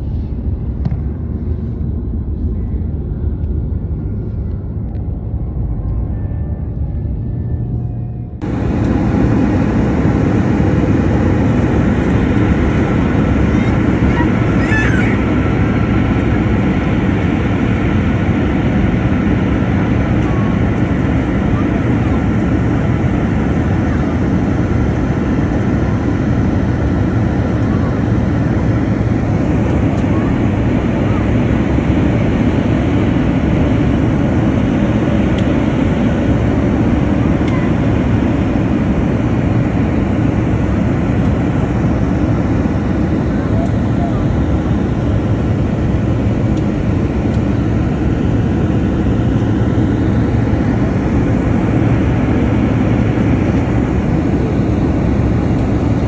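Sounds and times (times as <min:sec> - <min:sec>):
jet airliner cabin rumble: 0:00.0 - 0:56.0.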